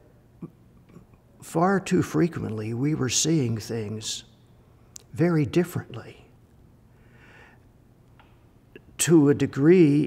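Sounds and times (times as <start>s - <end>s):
soft breath: 6.9s - 7.8s.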